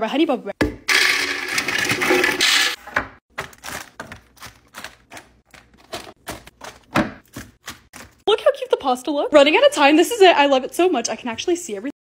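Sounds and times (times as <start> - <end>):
snack packages clicking and crinkling: 3.4 - 8.2.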